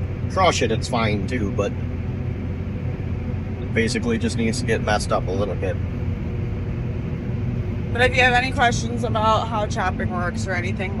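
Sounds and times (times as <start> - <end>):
harvester engine drone: 0.0 - 11.0.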